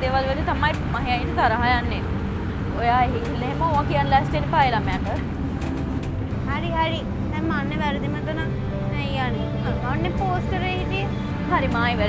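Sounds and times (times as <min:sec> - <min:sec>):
woman speaking: 0:00.0 - 0:02.1, 0:02.7 - 0:05.2, 0:06.5 - 0:12.0
bus engine low rumble: 0:00.0 - 0:12.0.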